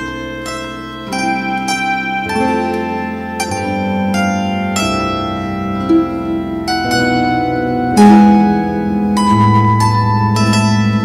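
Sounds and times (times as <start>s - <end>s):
zither music: 0.0s - 11.0s.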